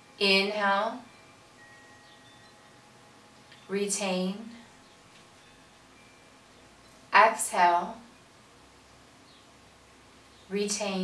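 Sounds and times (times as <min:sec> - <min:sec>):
faint high ringing tones: 0:00.0 - 0:11.0.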